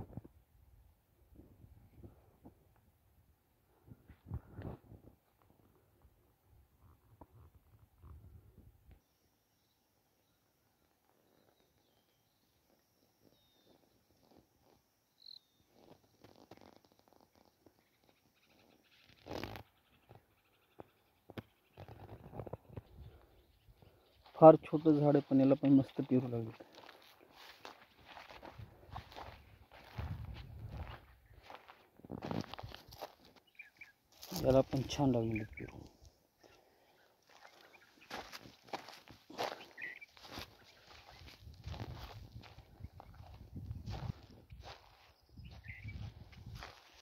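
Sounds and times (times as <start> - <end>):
footsteps on dry soil: 11.0 - 47.0.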